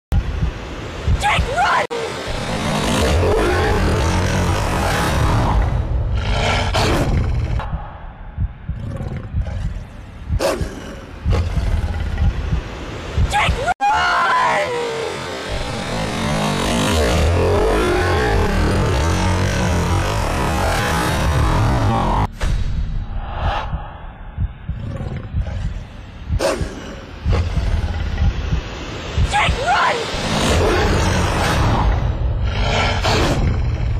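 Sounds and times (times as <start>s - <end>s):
low rumble: 0.1s - 1.2s, 2.2s - 13.3s, 15.3s - 29.4s, 30.0s - 33.9s
rushing animal roar: 2.1s - 8.0s, 15.0s - 22.3s, 30.1s - 33.9s.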